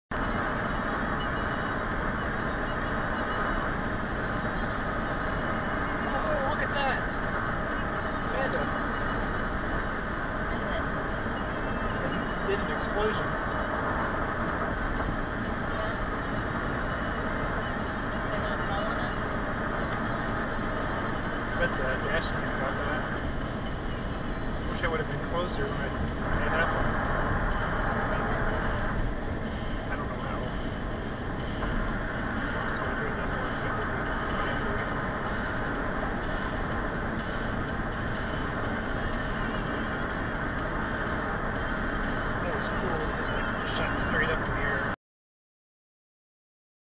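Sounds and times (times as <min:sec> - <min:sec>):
car road and engine noise: 0:00.0 - 0:45.0.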